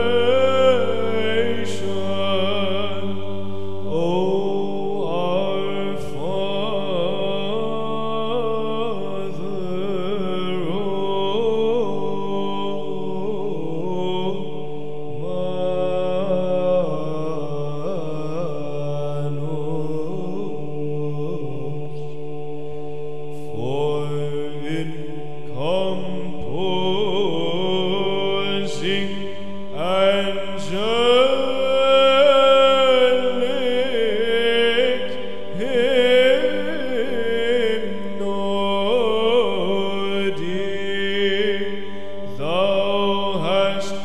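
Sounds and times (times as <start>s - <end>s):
held vocal drone: 0.0s - 44.0s
solo voice chanting: 0.0s - 44.0s.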